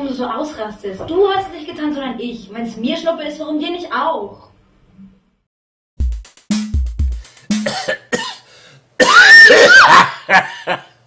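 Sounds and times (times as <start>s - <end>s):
deep bass drum beats: 6.0s - 8.3s
person's rough vocal outburst: 9.0s - 10.7s
person laughing: 9.6s - 11.0s.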